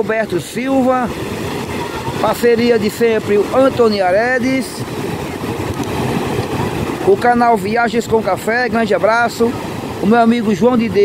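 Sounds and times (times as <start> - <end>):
ocean surf breaking: 0.0 - 11.0.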